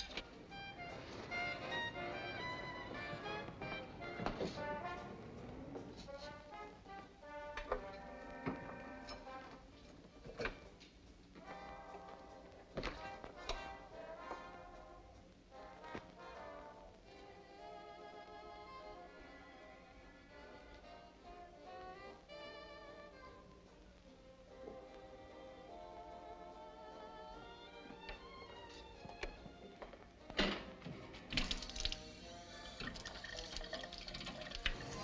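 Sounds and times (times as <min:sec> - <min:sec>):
orchestral music with strings and brass: 0:00.0 - 0:35.0.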